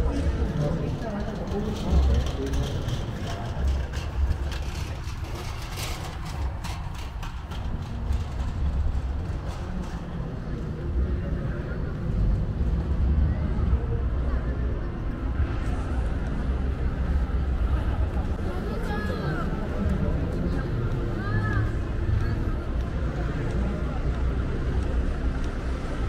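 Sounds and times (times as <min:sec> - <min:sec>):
passersby's voices: 0:00.0 - 0:26.0.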